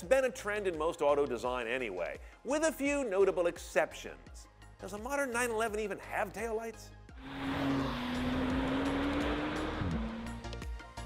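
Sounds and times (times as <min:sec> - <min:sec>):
background music with light beat: 0:00.0 - 0:11.0.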